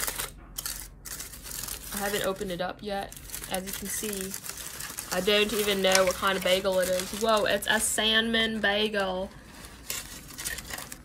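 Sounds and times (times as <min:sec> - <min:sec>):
aluminium foil crinkling: 0:00.0 - 0:11.0.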